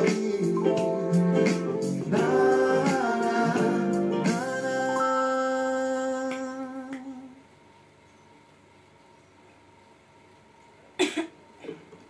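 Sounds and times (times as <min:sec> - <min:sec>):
woman coughing: 0:11.0 - 0:11.8.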